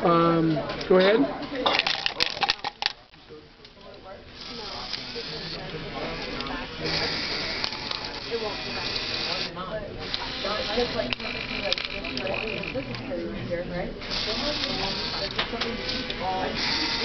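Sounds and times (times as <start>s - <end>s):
small electric motors whirring: 4.3s - 13.3s, 14.0s - 17.0s.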